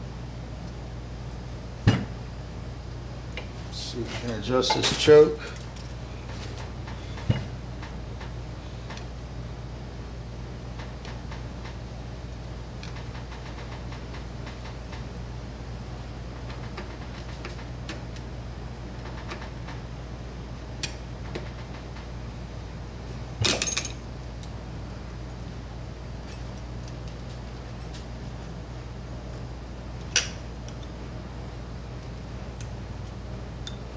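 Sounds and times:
steady low hum: 0.0 - 33.9.

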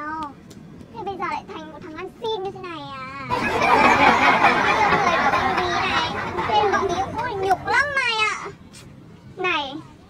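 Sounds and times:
children's voices: 1.0 - 8.6
voices chattering: 1.0 - 10.0.

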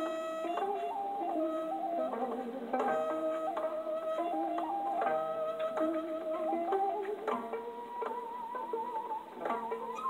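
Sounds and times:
bamboo flute melody: 0.0 - 10.0
plucked zither: 2.1 - 10.0.

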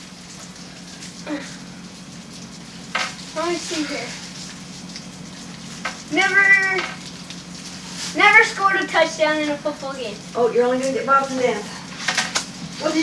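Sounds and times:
room hum and hiss: 0.0 - 13.0.

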